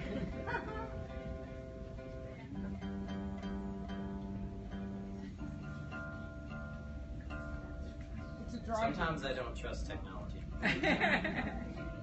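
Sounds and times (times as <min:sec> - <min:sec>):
acoustic guitar strings plucked: 0:00.0 - 0:09.6.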